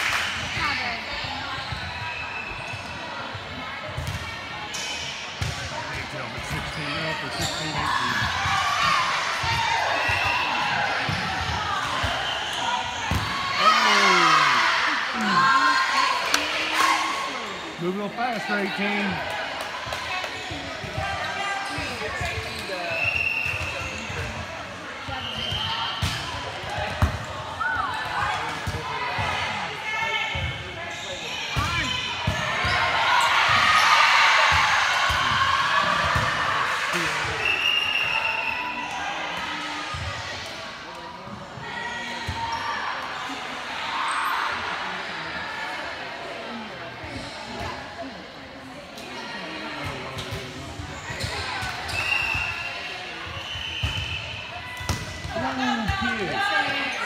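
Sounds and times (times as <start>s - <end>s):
players calling out: 9.5s - 19.3s.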